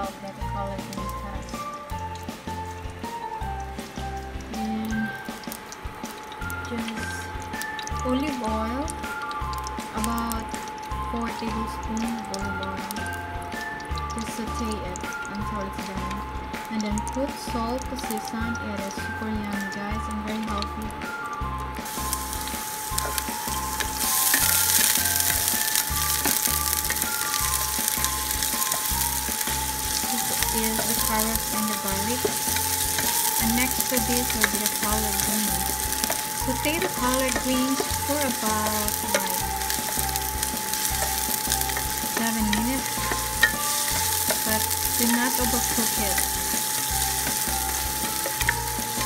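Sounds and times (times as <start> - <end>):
background music with beat: 0.0 - 49.0
onion sizzling in oil: 0.0 - 49.0
spatula scraping and tapping pan: 21.8 - 49.0.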